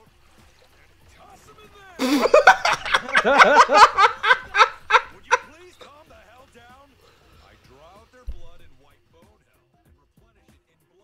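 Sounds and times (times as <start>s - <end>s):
man laughing: 2.0s - 5.9s.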